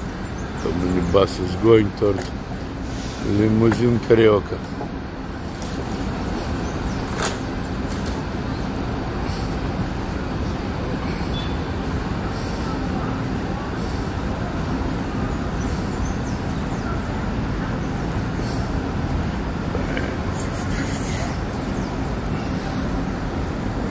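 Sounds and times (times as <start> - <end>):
buses passing: 0.0 - 23.9
street traffic rumble: 0.0 - 23.9.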